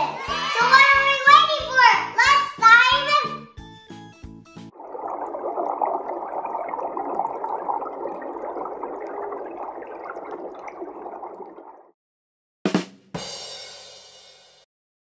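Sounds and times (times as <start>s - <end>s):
underwater bubbling and gurgling: 4.7s - 11.9s.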